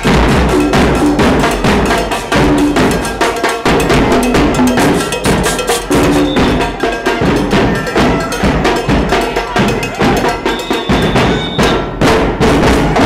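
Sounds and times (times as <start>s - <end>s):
drums and cowbell beat: 0.0s - 13.0s.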